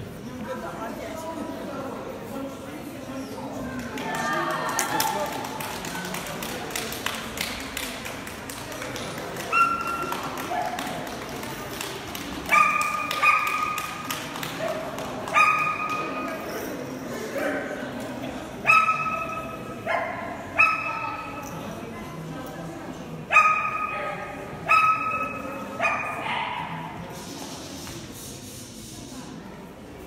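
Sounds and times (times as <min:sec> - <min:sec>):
dog barking: 0:18.6 - 0:21.3, 0:23.3 - 0:24.0, 0:24.6 - 0:26.7.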